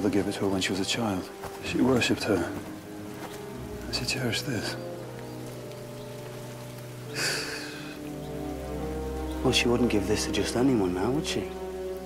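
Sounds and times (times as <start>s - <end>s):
dramatic score low notes: 0.0s - 12.0s.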